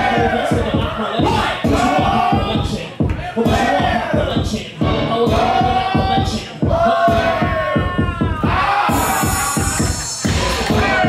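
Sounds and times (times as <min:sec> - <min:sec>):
dance track with kick drum: 0:00.0 - 0:11.0.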